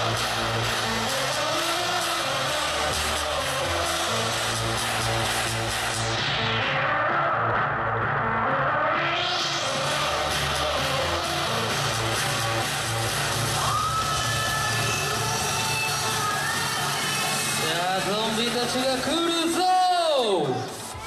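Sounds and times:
electronic dance music over pa: 0:00.0 - 0:21.0.

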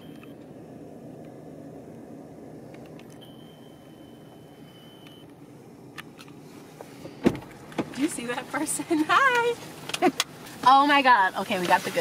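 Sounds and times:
car cabin hum: 0:00.0 - 0:12.0
thin high tone: 0:03.1 - 0:05.3.

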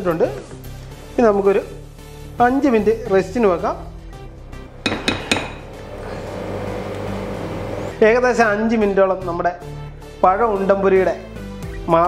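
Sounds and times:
spatula clinking on glass bowl: 0:04.8 - 0:05.8.

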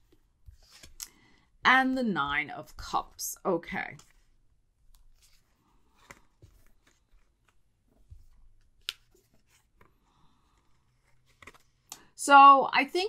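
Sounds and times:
cards clicking and rustling: 0:00.0 - 0:01.2, 0:03.9 - 0:12.0.

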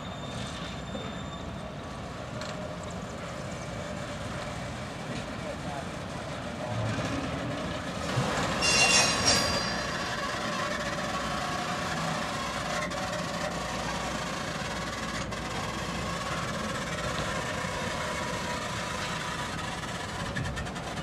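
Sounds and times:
metallic squeal: 0:00.0 - 0:01.7, 0:08.4 - 0:11.2
train cars rumbling on track: 0:00.0 - 0:21.0.

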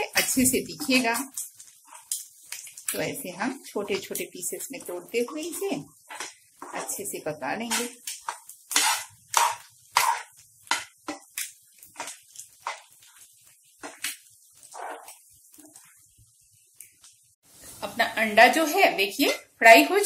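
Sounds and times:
metal spoon scraping frying pan: 0:00.2 - 0:02.3, 0:03.8 - 0:11.3, 0:11.9 - 0:13.1.

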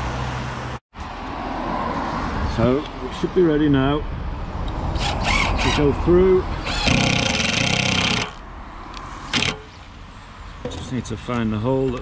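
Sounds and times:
impact driver hammering screw: 0:06.6 - 0:08.4, 0:09.3 - 0:09.8.

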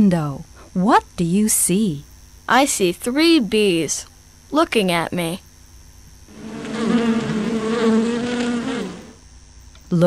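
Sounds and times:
bees buzzing: 0:06.3 - 0:09.3.

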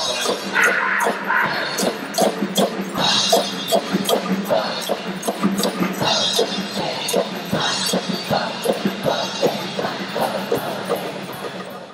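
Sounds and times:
drum and cymbal beat: 0:00.0 - 0:11.9
pep band playing: 0:00.0 - 0:11.9.

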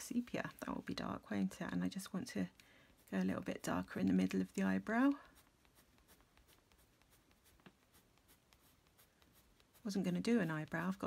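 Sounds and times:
pencil scratching on paper: 0:00.0 - 0:11.0.

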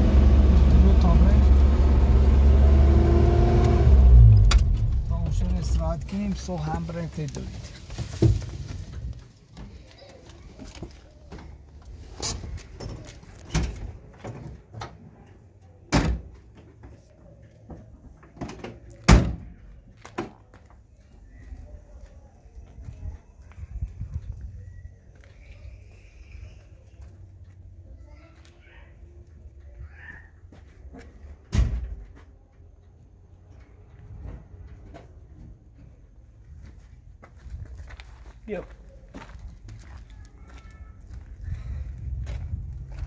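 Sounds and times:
door slam: 0:19.1 - 0:19.5, 0:31.5 - 0:32.0.

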